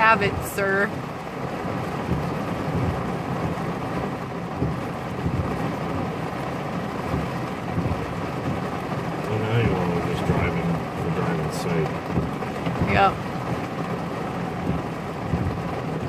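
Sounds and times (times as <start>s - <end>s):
rain on windshield: 0.0s - 16.0s
vehicle rumble inside cab: 0.0s - 16.0s.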